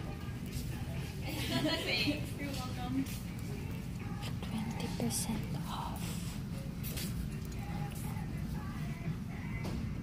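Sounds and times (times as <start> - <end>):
faint indistinct voices: 0.0 - 9.8
shop background hum: 0.0 - 10.0.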